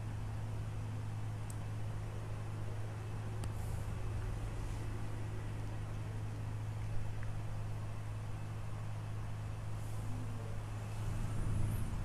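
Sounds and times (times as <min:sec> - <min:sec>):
low hum with faint hiss: 0:00.0 - 0:12.0.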